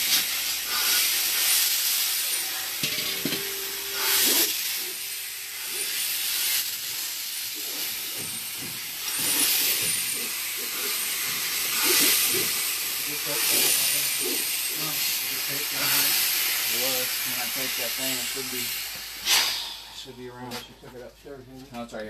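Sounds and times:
compressed air hissing: 0.0 - 20.9
steady hum: 0.0 - 21.6.

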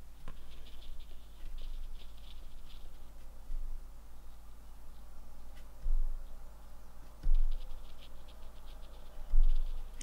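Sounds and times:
brush dabbing on paper: 0.0 - 10.0.

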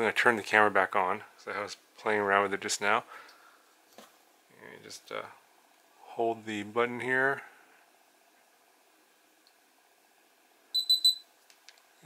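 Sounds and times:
short high-pitched electronic beeps: 10.8 - 11.3.

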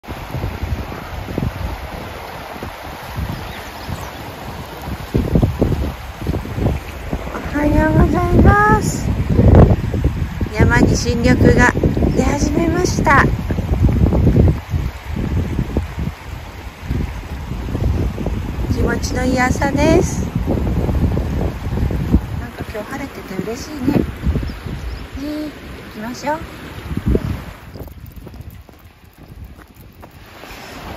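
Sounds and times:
fast-flowing river rushing: 0.0 - 27.8, 30.1 - 30.9
wind buffeting microphone: 0.0 - 30.9
person's voice: 7.3 - 9.2, 10.5 - 13.4, 18.6 - 20.4, 22.4 - 24.1, 25.2 - 26.5.

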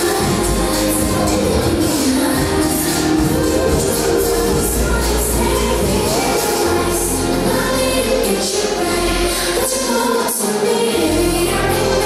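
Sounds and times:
dance music over loudspeakers: 0.0 - 12.0.

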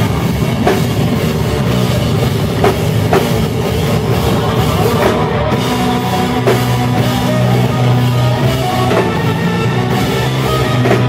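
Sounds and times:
metal band playing loud: 0.0 - 11.0.

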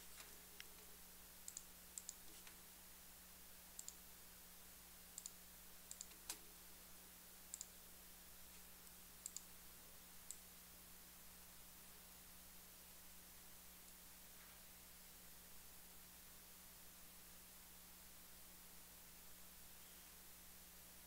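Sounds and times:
faint steady hum: 0.0 - 21.0
computer mouse clicking: 1.4 - 2.6, 3.8 - 4.0, 5.2 - 6.4, 7.5 - 7.8, 8.8 - 9.5.

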